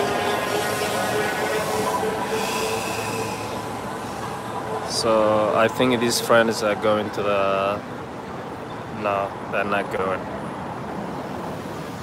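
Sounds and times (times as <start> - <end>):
multi-tone vehicle whine: 0.0 - 8.9
large vehicle rumble: 0.0 - 9.5.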